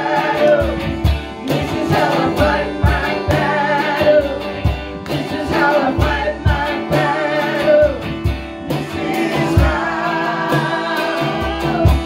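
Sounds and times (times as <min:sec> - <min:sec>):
electric guitar: 0:00.0 - 0:12.0
woman singing: 0:01.5 - 0:04.6, 0:05.2 - 0:08.1, 0:08.7 - 0:12.0
man singing: 0:05.3 - 0:12.0.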